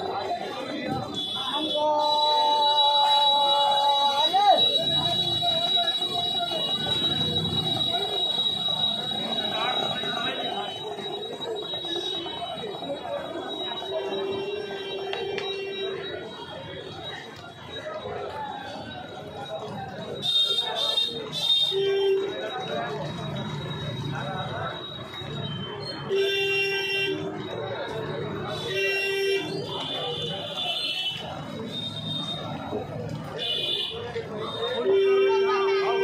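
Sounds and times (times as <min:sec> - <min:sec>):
indistinct voices talking: 0:00.0 - 0:36.0.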